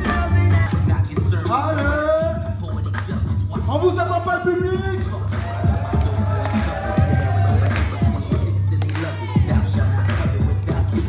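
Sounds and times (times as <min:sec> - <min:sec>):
dance music over sound system: 0:00.0 - 0:11.0.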